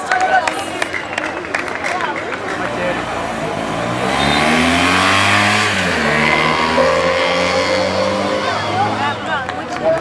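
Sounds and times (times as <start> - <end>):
motorcycle riding past: 3.0 - 9.2.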